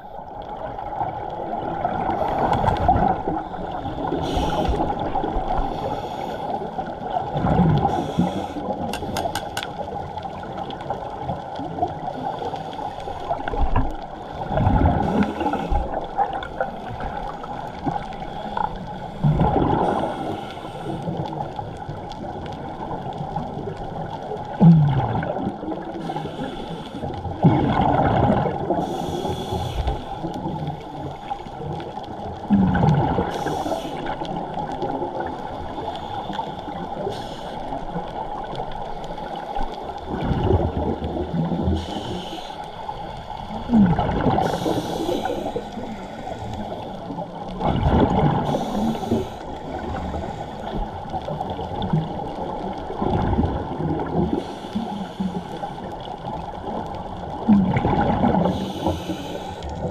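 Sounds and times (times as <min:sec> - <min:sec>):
water sloshing and gurgling: 0:00.0 - 0:59.9.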